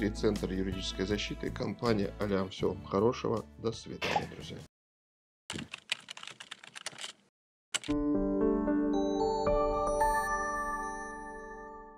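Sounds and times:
computer keyboard typing: 0:05.5 - 0:08.0.

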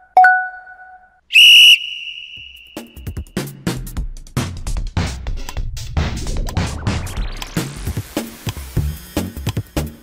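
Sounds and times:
sports whistle blast: 0:01.3 - 0:03.4
music with a beat: 0:02.8 - 0:10.0.

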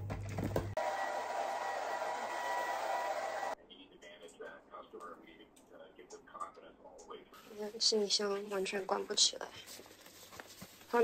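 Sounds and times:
hair dryer running: 0:00.8 - 0:03.6.

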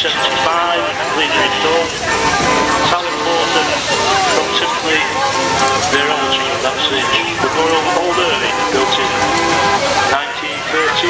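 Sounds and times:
commentator over public address: 0:00.0 - 0:11.0
crowd chatter: 0:00.0 - 0:11.0.

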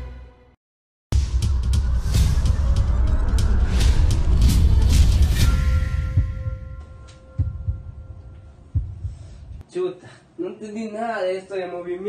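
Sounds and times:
dull low thumps: 0:01.1 - 0:09.6.

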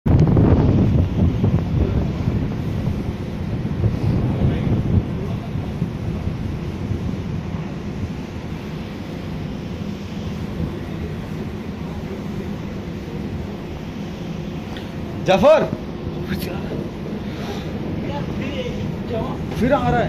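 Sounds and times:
rough sea churning against hull: 0:00.0 - 0:20.0
wind buffeting microphone: 0:00.0 - 0:20.0.

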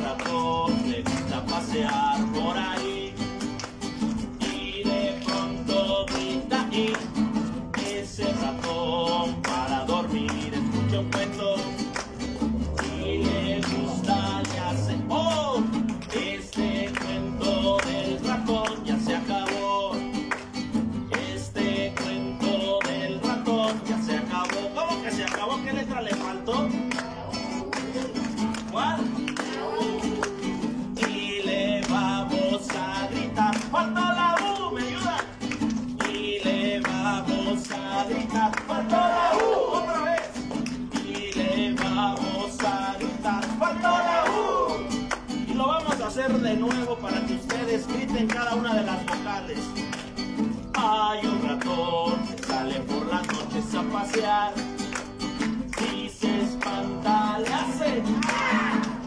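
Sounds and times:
acoustic guitar strumming: 0:00.0 - 0:59.0
man singing children's song: 0:00.0 - 0:59.0.

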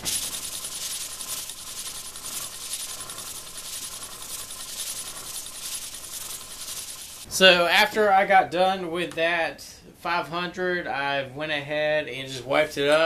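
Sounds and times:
plane rubbed on sandpaper: 0:00.0 - 0:07.3.

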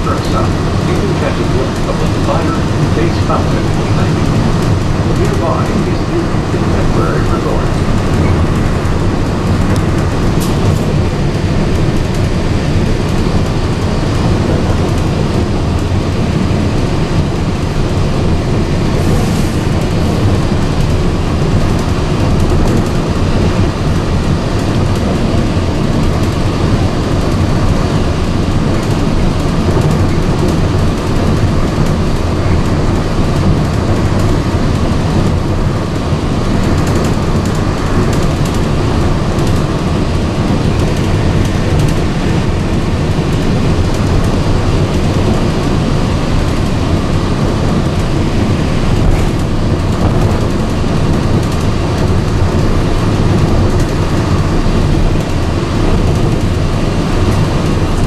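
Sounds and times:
monorail running drone: 0:00.0 - 0:58.0.

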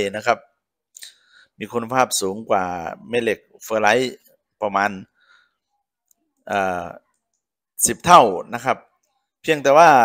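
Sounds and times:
man narrating: 0:00.0 - 0:00.5, 0:01.6 - 0:05.2, 0:06.5 - 0:07.0, 0:07.8 - 0:10.0.

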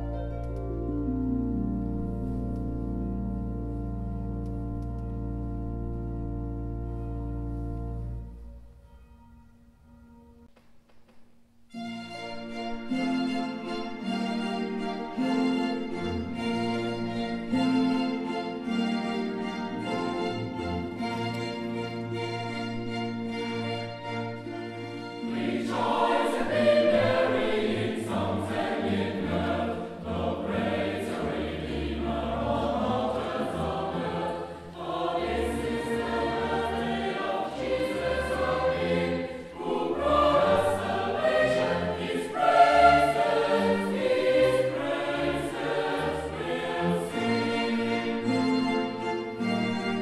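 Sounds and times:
orchestral accompaniment: 0:00.0 - 0:10.5, 0:11.7 - 0:50.0
mixed choir singing: 0:24.9 - 0:49.0.

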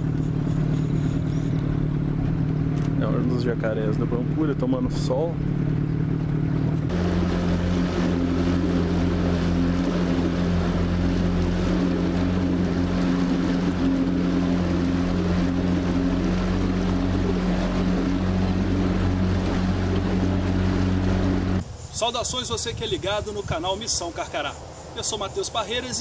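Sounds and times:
boat motor humming: 0:00.0 - 0:21.7.

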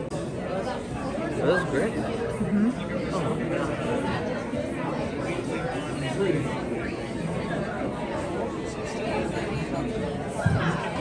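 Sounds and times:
diners chatter: 0:00.0 - 0:11.0.

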